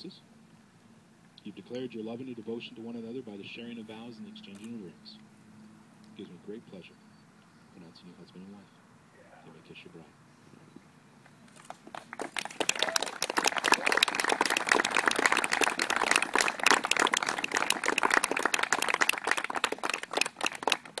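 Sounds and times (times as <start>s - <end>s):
people applauding: 11.7s - 21.0s.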